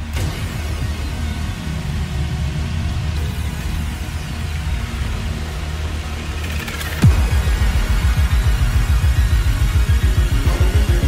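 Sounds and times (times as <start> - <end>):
dubstep electronic music: 0.0 - 11.0.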